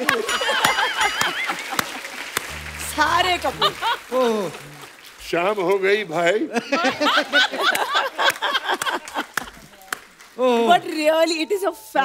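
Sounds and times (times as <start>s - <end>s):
audience applause: 1.2s - 4.8s, 7.7s - 10.4s
wavering high music note: 2.5s - 4.1s
low bass note: 2.5s - 4.2s.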